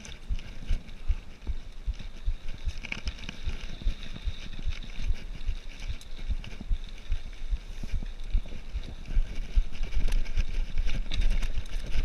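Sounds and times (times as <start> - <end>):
bike tyres crunching on gravel: 0.0 - 12.0.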